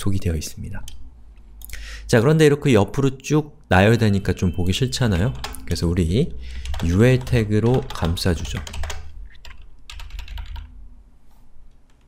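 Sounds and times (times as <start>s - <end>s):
computer keyboard typing: 5.2s - 5.8s, 6.5s - 10.7s.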